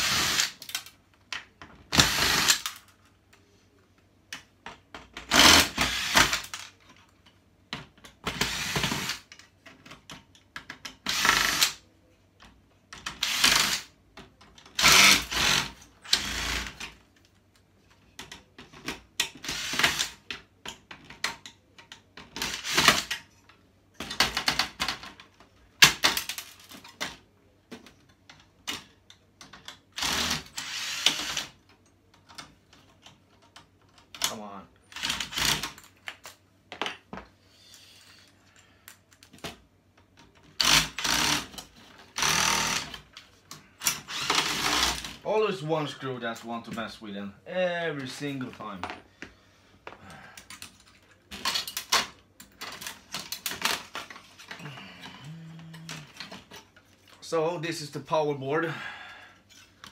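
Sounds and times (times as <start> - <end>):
cordless drill driver whirring: 0.0 - 0.7, 1.9 - 2.8, 5.3 - 6.7, 8.3 - 9.3, 11.0 - 11.8, 13.2 - 13.9, 14.8 - 16.8, 30.0 - 31.5, 40.6 - 43.0, 43.8 - 45.2.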